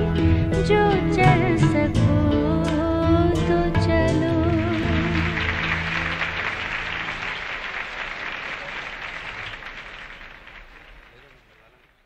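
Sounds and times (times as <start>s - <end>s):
vocal music final notes: 0.2s - 6.8s
audience applause: 4.4s - 12.0s.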